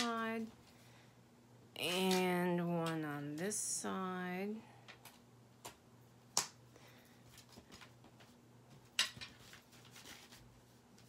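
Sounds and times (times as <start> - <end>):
paper pages handled: 7.2 - 11.0.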